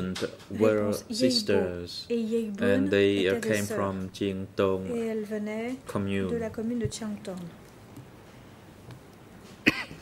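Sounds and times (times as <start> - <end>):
person coughing: 9.6 - 10.0.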